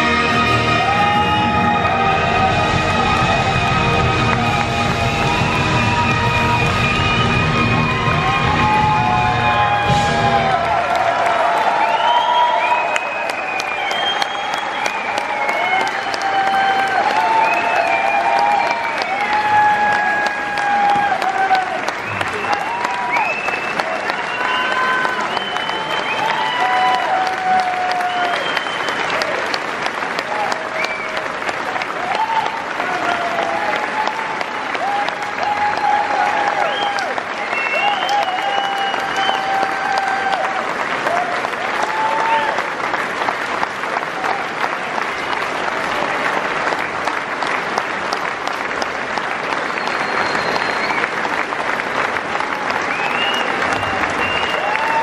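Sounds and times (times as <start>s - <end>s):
audience applause: 0.0s - 55.0s.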